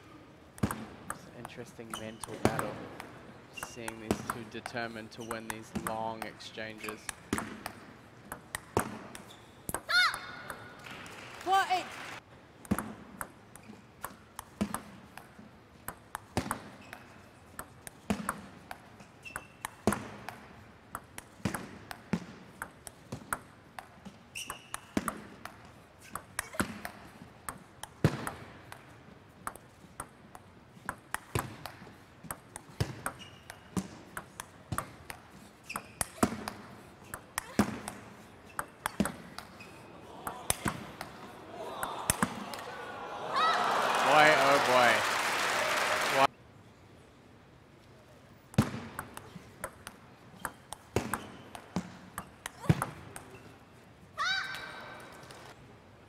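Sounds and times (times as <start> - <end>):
table tennis ball clicking: 3.8 - 10.6, 12.6 - 25.6
crowd cheering and applauding: 41.5 - 46.3.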